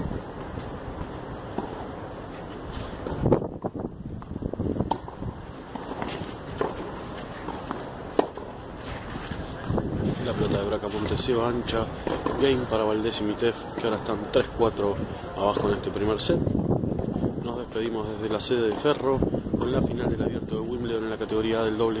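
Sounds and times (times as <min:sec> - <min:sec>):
wind noise on microphone: 0:00.0 - 0:22.0
tennis ball struck by rackets: 0:03.0 - 0:08.6, 0:12.0 - 0:12.6, 0:15.5 - 0:16.0.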